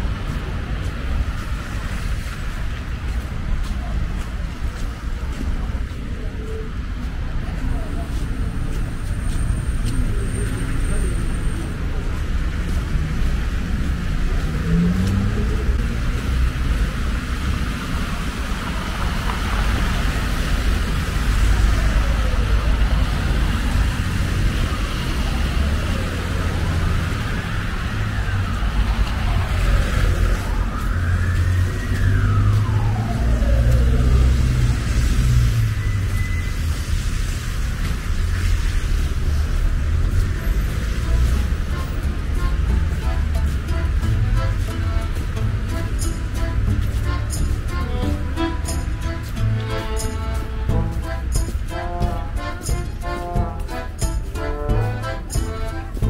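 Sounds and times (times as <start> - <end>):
cars passing: 0.0 - 56.0.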